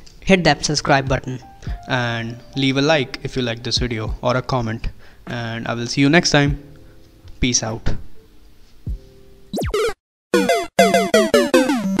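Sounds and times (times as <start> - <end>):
synthesizer blips sliding down: 9.5 - 12.0.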